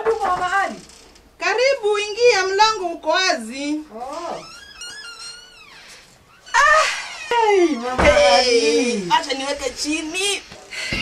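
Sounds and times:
meow-like wailing calls: 0:05.2 - 0:08.7.

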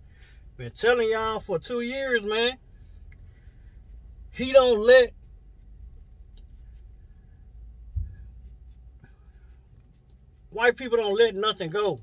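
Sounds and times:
vehicle cab rumble: 0:00.0 - 0:12.0
faint rubbing: 0:02.7 - 0:10.9
low thump: 0:07.9 - 0:08.3.

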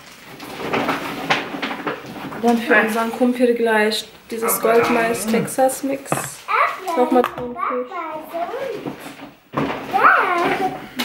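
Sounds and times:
items knocking together: 0:00.0 - 0:02.6, 0:04.8 - 0:07.6
groceries being rummaged: 0:00.0 - 0:11.0.

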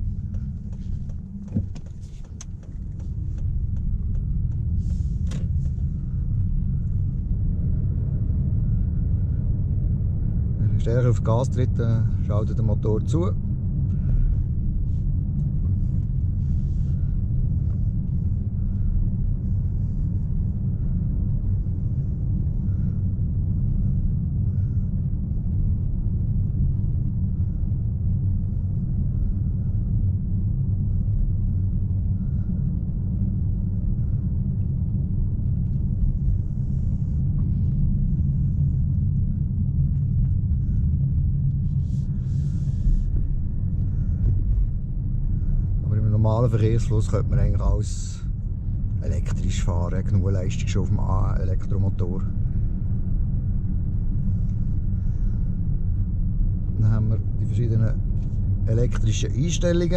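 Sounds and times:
car cabin road rumble: 0:00.0 - 0:59.9.

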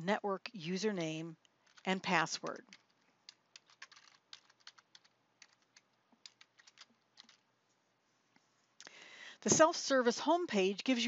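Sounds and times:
typing on computer keyboard: 0:01.6 - 0:07.4.

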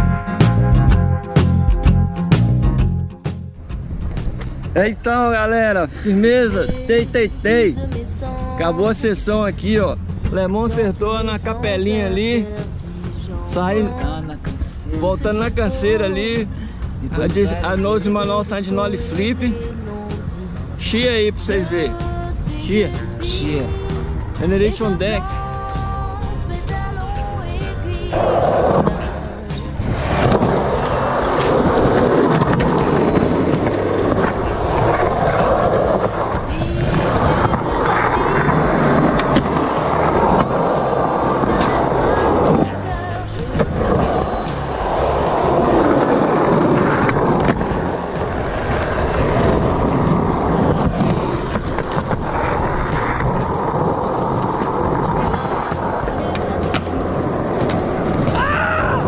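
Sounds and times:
background music: 0:00.0 - 0:59.0
skateboard wheels rolling on concrete: 0:00.0 - 0:59.0.

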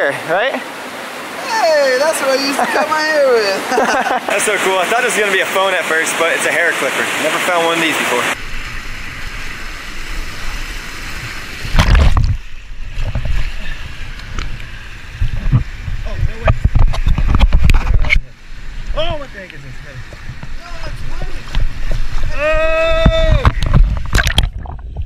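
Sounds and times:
water hitting microphone: 0:00.0 - 0:25.0
water running over weir: 0:00.0 - 0:25.0.

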